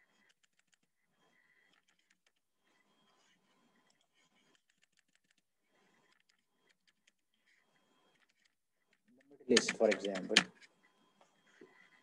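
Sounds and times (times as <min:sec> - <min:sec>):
faint keyboard typing: 0:00.0 - 0:12.0.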